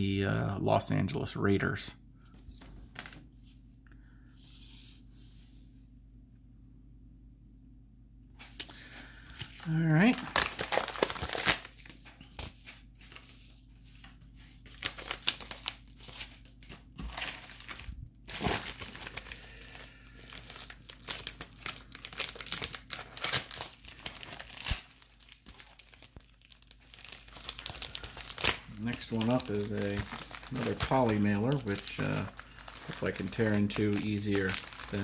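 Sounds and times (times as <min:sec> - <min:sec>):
plastic packaging crinkling: 0:09.2 - 0:35.0.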